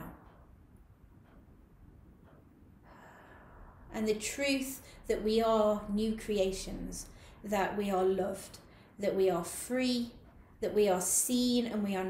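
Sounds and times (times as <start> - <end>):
woman's faint in-breath: 2.8 - 3.9.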